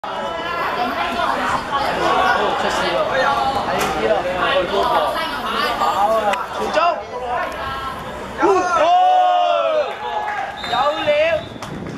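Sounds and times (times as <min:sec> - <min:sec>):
people chattering: 0:00.0 - 0:11.9.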